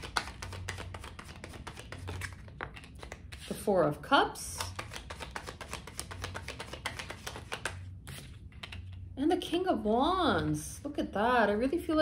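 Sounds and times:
cards being shuffled: 0.0s - 3.6s, 4.6s - 9.1s.

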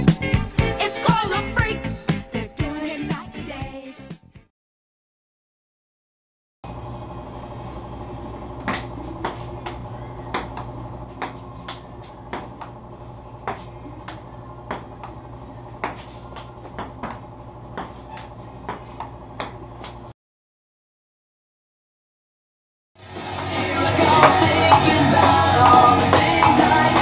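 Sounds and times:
low hum: 6.7s - 20.1s.

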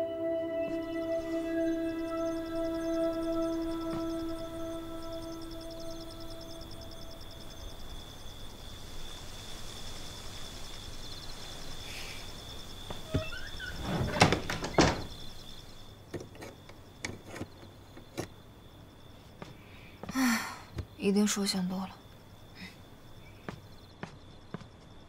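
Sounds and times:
night insects chirring: 0.0s - 25.0s
door rattling: 13.0s - 15.2s.

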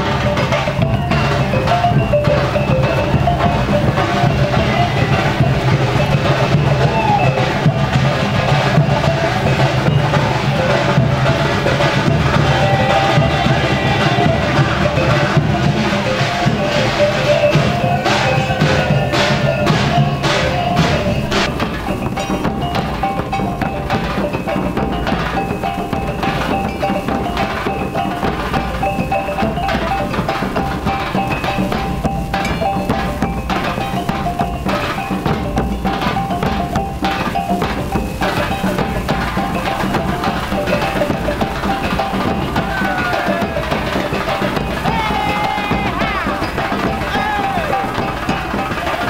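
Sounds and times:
melody of short stepped notes: 0.0s - 49.0s
steady drumming: 0.0s - 49.0s.

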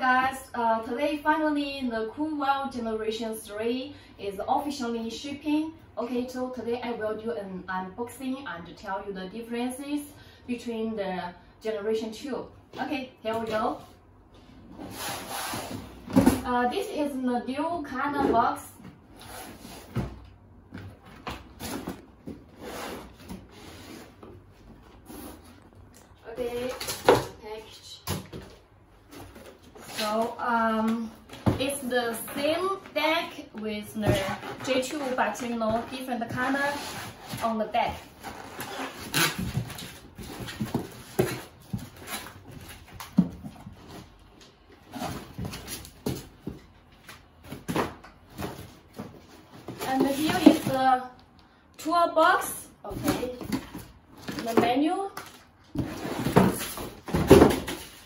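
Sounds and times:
foam blocks rubbing and squeaking: 34.1s - 42.9s.

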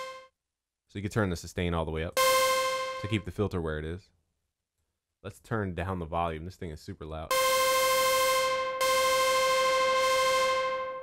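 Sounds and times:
buzzy synthesizer lead note: 0.0s - 0.2s, 2.2s - 3.2s, 7.3s - 11.0s.

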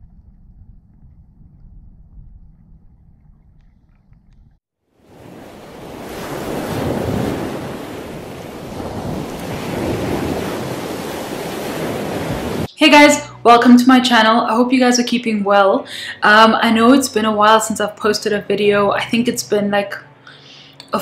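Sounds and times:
low underwater rumble: 0.0s - 4.6s
rushing water: 5.0s - 12.7s.

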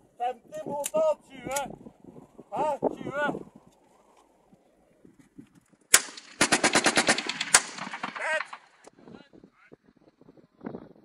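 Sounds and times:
automatic gunfire burst: 5.9s - 8.9s
single gunshots: 5.9s - 8.9s.

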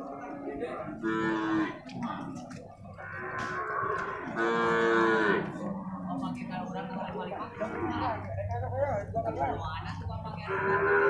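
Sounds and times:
water buffalo mooing: 1.0s - 1.9s, 2.9s - 6.3s, 7.6s - 8.2s, 10.4s - 11.0s.

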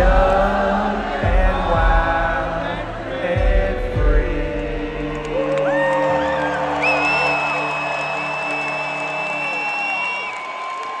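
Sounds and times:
live music through sound system: 0.0s - 11.0s
crowd whooping and cheering: 5.2s - 11.0s.

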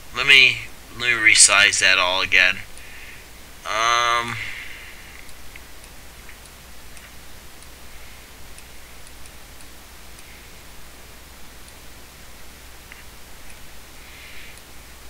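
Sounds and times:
low hum: 0.0s - 15.0s
microphone hiss: 0.0s - 15.0s.

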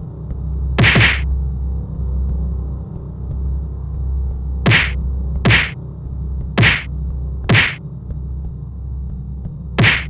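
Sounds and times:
steady low hum: 0.0s - 10.0s
punch sound effects: 0.8s - 1.2s, 4.7s - 5.8s, 6.6s - 6.9s, 7.5s - 7.8s, 9.8s - 10.0s.

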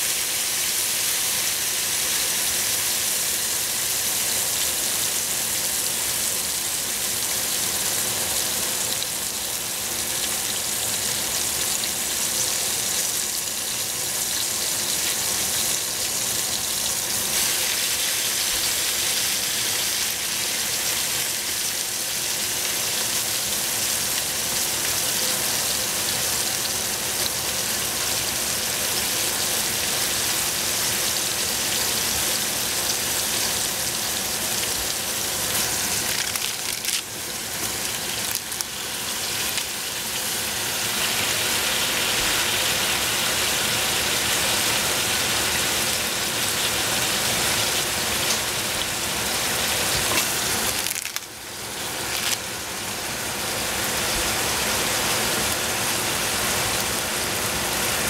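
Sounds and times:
vegetables sizzling in a pot: 0.0s - 58.0s.

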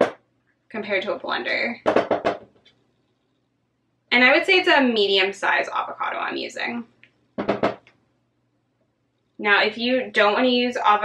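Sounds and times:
person speaking: 0.7s - 2.5s, 4.1s - 7.9s.

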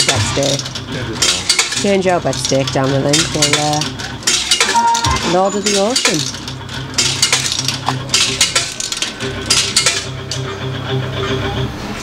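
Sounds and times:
coins clinking into slot machine: 0.0s - 10.5s
electronic machine tones: 4.7s - 5.7s.

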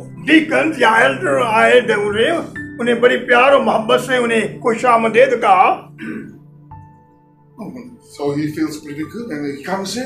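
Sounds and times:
man's voice: 0.0s - 5.9s
soft background music: 0.0s - 10.0s.

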